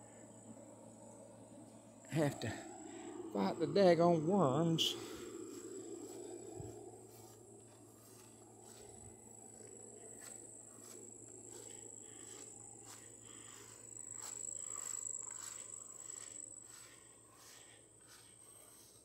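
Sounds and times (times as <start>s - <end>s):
insects trilling: 0.0s - 19.0s
footsteps on grass: 4.8s - 19.0s.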